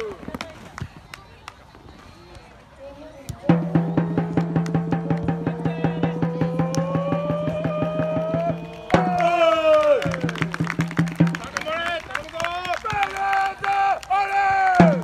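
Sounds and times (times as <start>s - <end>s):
drum beating fast rhythm: 3.5s - 11.6s, 14.8s - 15.0s
group shouting: 5.4s - 10.3s.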